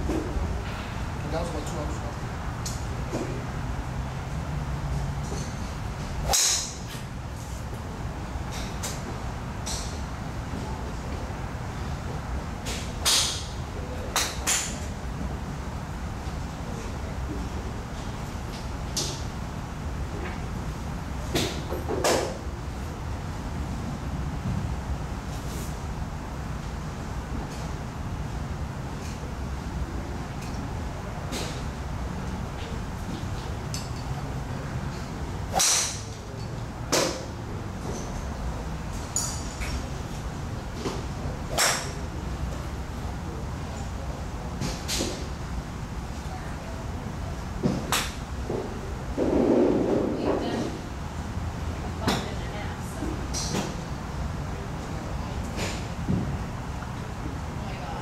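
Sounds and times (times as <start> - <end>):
golf club striking ball: 6.2 - 7.0, 35.5 - 36.1
golf driver striking ball: 35.5 - 36.0.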